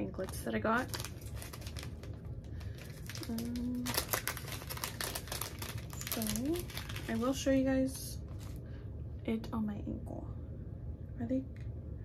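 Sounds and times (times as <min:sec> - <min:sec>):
plastic packaging crinkling: 0:00.0 - 0:08.6.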